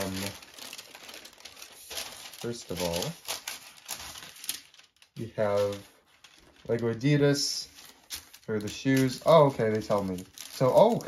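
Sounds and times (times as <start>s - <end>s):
thin paper crinkling: 0.0s - 11.0s.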